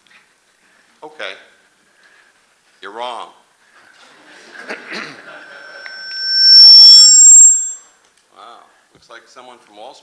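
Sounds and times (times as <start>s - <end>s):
microphone feedback squeal: 5.2s - 7.8s.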